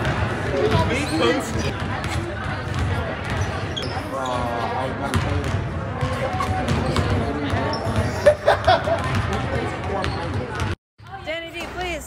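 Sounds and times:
basketballs bouncing on hardwood: 0.0s - 3.5s, 5.1s - 8.0s, 8.6s - 10.8s
chatter of voices: 0.0s - 10.7s.

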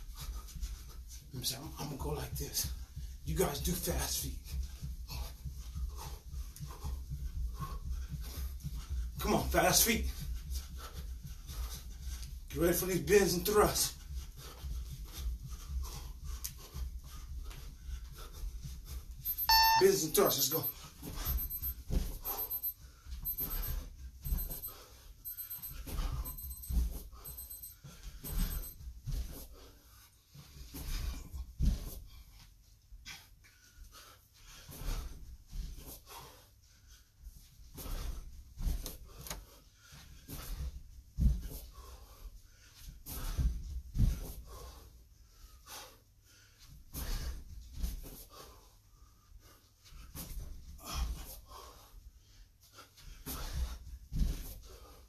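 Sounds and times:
man panting heavily: 0.0s - 1.3s, 2.3s - 12.6s, 13.2s - 19.2s, 29.2s - 47.5s, 48.1s - 55.0s.

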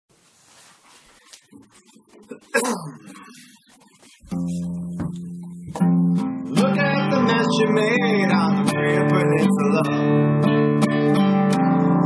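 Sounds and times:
rustling and handling noises: 0.1s - 6.0s.

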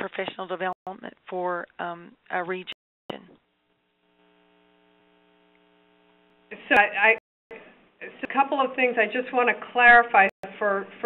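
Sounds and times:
electrical hum: 3.1s - 7.2s.

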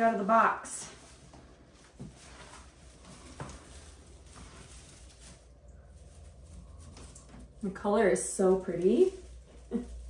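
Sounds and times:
artificial tree branches rustling: 0.0s - 10.0s.

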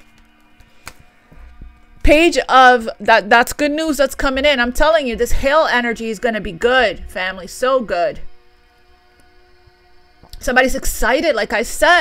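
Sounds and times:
cards being picked up: 0.0s - 1.1s
soft sustained background music: 0.0s - 12.0s.

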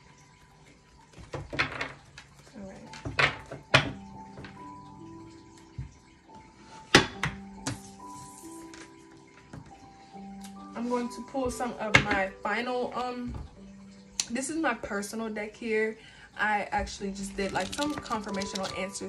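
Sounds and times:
soft music with held notes: 0.0s - 19.0s
cards rustling: 17.3s - 18.8s.

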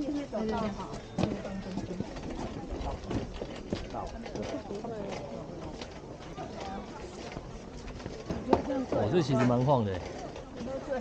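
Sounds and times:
footsteps on wooden planks: 0.0s - 10.9s
faint voices: 0.0s - 11.0s.

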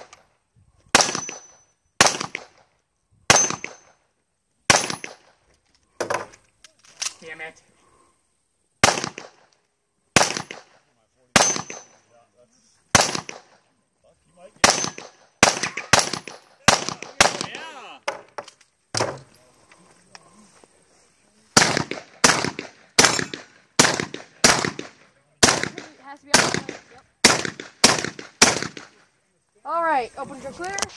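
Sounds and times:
rapid shotgun shots: 0.9s - 1.4s, 2.0s - 2.6s, 4.7s - 5.3s, 8.8s - 9.5s, 10.2s - 10.8s, 11.4s - 11.9s, 12.9s - 13.5s, 14.6s - 17.7s, 21.6s - 29.0s
gunshots: 0.9s - 2.7s, 3.3s - 4.0s, 4.7s - 5.4s, 8.8s - 9.5s, 10.1s - 12.0s, 12.9s - 13.6s, 14.6s - 17.8s, 21.5s - 29.0s.

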